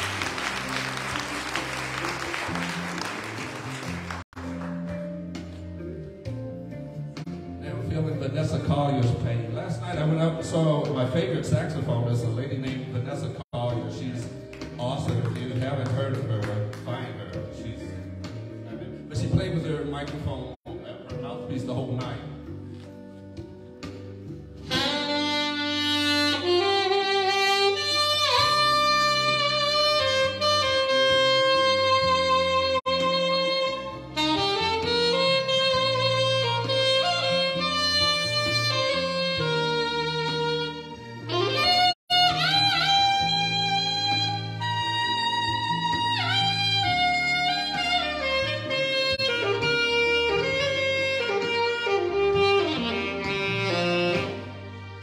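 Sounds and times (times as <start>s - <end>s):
alto saxophone jazzy melody: 0.0s - 55.0s
backing track with bass line: 0.0s - 55.0s.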